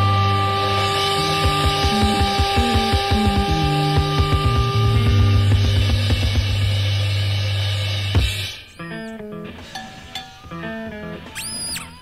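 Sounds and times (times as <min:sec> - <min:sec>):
blues-rock instrumental: 0:00.0 - 0:12.0.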